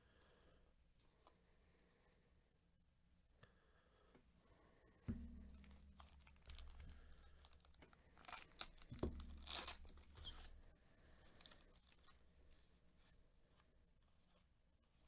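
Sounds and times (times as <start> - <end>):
thumps: 5.1 - 10.5
plastic wrapper crinkling and tearing: 5.5 - 10.6, 11.2 - 12.2.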